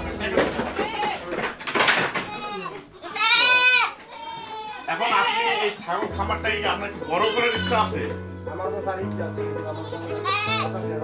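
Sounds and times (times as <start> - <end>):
goat bleating: 0.6 - 1.3, 2.2 - 6.1, 6.8 - 8.1, 9.7 - 10.8.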